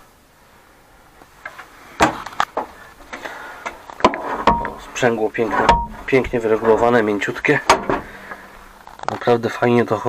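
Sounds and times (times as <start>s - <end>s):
knocks and clunks in tractor cab: 4.0s - 8.7s.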